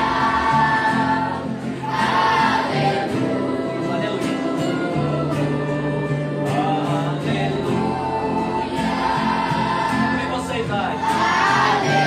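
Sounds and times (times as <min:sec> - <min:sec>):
group singing choir-style: 0:00.0 - 0:12.0.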